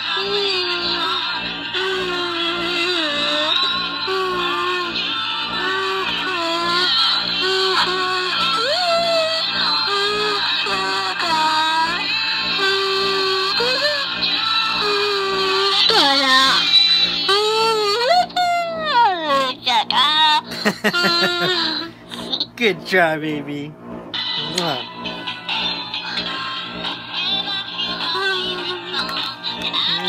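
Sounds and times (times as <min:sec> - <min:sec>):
toddler singing: 0:00.0 - 0:20.3, 0:26.2 - 0:30.0
toy microphone playing a tune: 0:00.0 - 0:22.5, 0:24.2 - 0:30.0.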